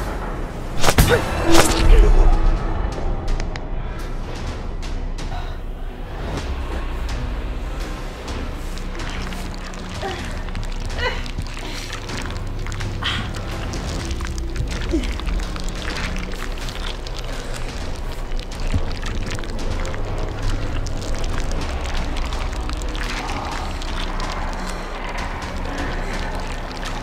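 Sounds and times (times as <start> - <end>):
low droning horror score: 0.0 - 27.0.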